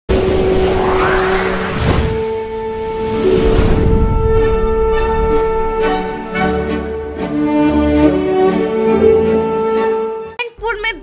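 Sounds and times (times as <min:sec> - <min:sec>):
loud whoosh: 0:00.1 - 0:06.5
rising pitch sweep: 0:00.1 - 0:06.9.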